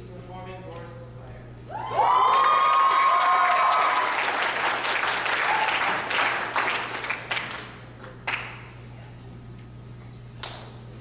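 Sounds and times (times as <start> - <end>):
audience cheering: 1.7 - 6.8
audience applauding: 1.9 - 8.6.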